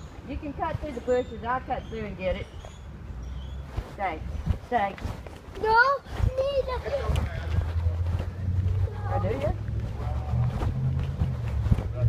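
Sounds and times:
low rumble: 0:07.3 - 0:12.0.

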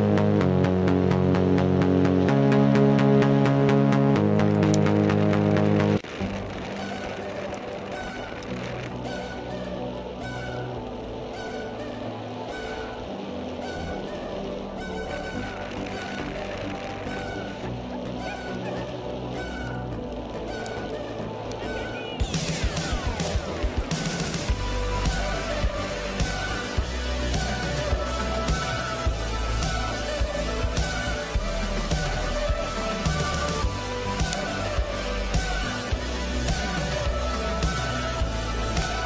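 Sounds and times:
music: 0:00.0 - 0:39.0
steady rush of sled noise: 0:01.0 - 0:39.0.

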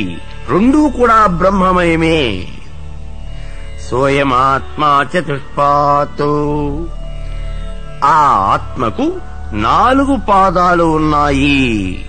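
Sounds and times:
man chanting: 0:00.0 - 0:02.8, 0:03.8 - 0:07.0, 0:08.0 - 0:12.0
low background drone: 0:00.0 - 0:12.0.

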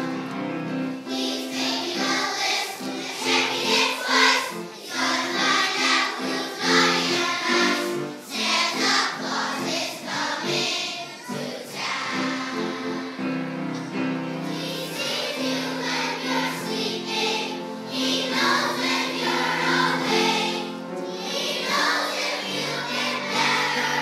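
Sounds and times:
children's choir singing: 0:00.0 - 0:24.0.

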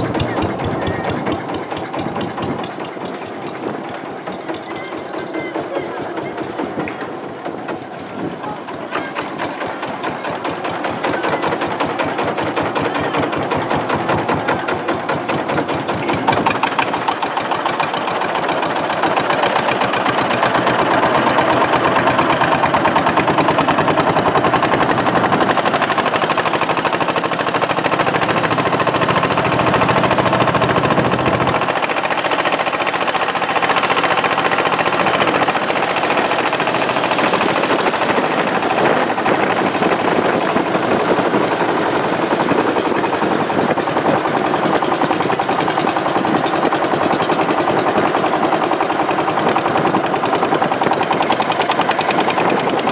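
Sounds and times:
boat engine pulsing: 0:00.0 - 0:52.9.

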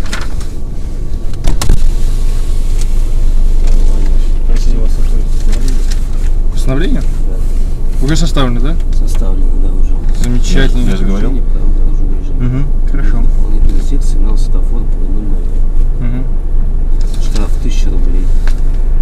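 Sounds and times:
car low drone: 0:00.0 - 0:19.0
indistinct talking: 0:02.7 - 0:18.6.

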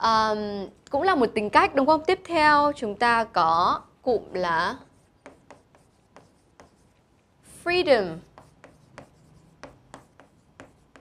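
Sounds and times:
chalk tapping and scraping: 0:04.8 - 0:07.3, 0:08.0 - 0:11.0.

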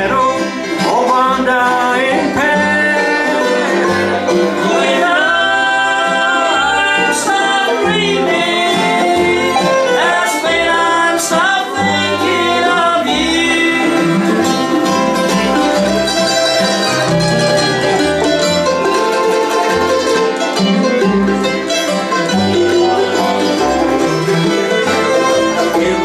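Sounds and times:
bluegrass band playing: 0:00.0 - 0:26.0
fiddle with sliding notes: 0:00.0 - 0:26.0.

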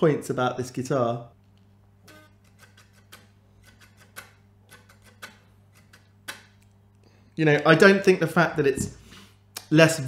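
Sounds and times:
pick clicking on muted strings: 0:02.4 - 0:06.7.

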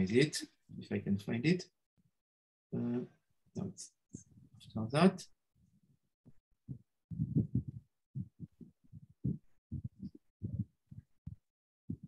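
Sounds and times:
muffled low thumps: 0:06.7 - 0:12.0.

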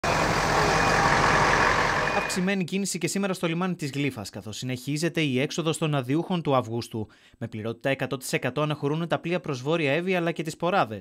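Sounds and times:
engine rumble: 0:00.0 - 0:02.4.

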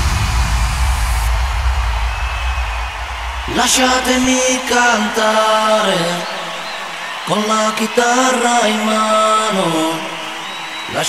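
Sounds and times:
deep bass drone: 0:00.0 - 0:03.8
wash of noise: 0:00.0 - 0:03.9.

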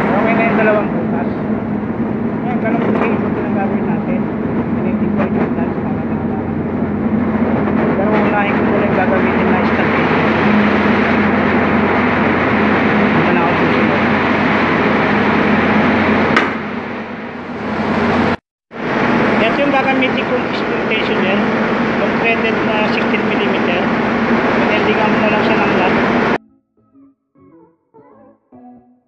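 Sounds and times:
engine-room machinery drone: 0:00.0 - 0:26.4.

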